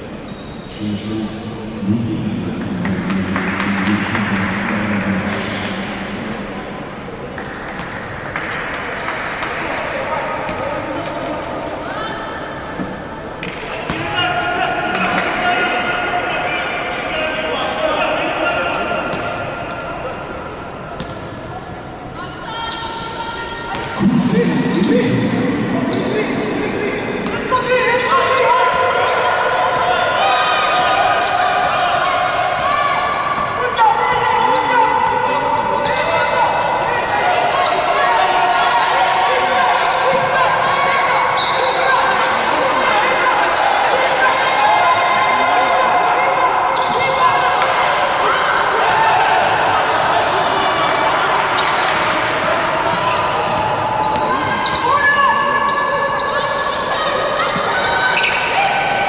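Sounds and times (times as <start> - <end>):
players calling out: 0.1 - 12.6, 13.4 - 59.0
sneakers squeaking on hardwood: 25.4 - 26.4, 40.1 - 41.9, 52.9 - 59.0.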